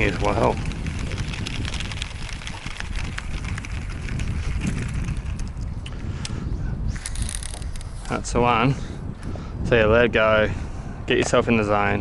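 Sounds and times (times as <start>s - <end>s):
small clicks and ticks: 0.0s - 6.4s, 7.0s - 8.0s
wind buffeting microphone: 0.0s - 12.0s.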